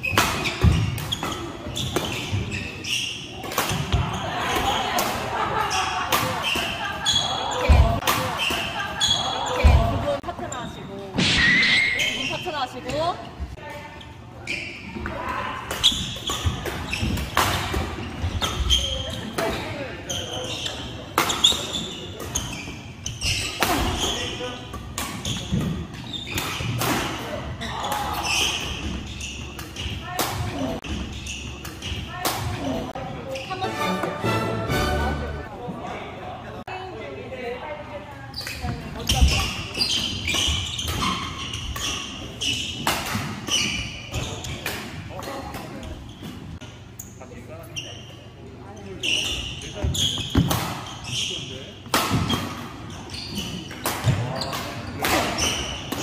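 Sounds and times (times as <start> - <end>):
players' voices: 0.3 - 56.0.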